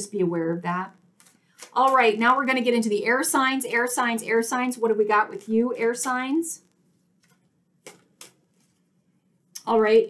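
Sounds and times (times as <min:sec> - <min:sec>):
card deck being shuffled: 0:01.2 - 0:02.1, 0:07.2 - 0:08.9.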